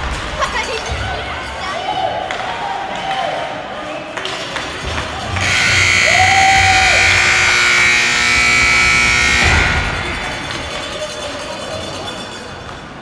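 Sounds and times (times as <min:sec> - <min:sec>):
scoreboard buzzer: 0:05.3 - 0:11.0.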